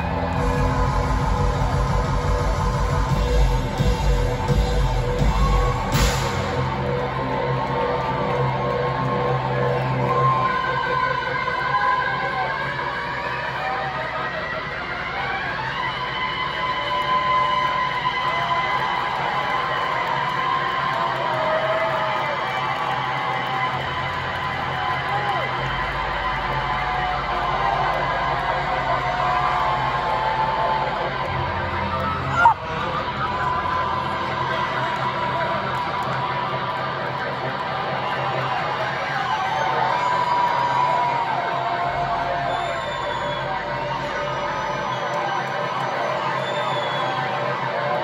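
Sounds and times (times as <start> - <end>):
droning bass: 0.0 - 10.6
crowd shouting and cheering: 0.0 - 48.0.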